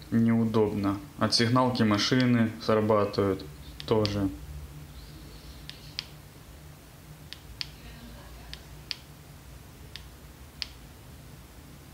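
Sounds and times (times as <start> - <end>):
person speaking: 0.0 - 4.4.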